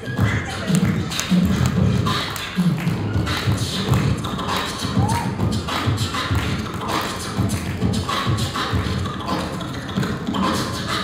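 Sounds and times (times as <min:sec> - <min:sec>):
beatboxing kick-drum thumps: 0:00.0 - 0:11.0
beatboxing snare-like clicks: 0:00.1 - 0:11.0.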